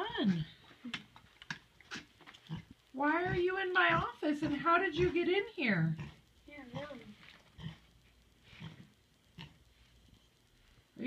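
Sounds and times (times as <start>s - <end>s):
pig grunting: 7.6s - 7.9s.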